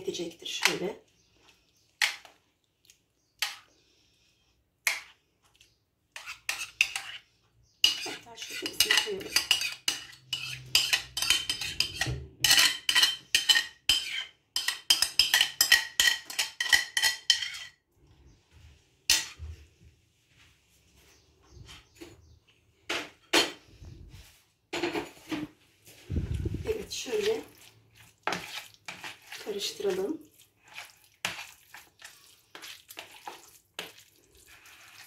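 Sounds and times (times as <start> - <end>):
cutlery scraping a bowl: 3.4 - 3.8, 6.1 - 17.8, 26.7 - 35.0.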